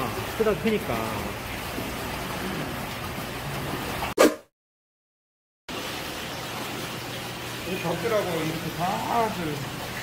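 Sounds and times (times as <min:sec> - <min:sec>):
rushing water in aquarium tanks: 0:00.0 - 0:04.2, 0:05.7 - 0:10.0.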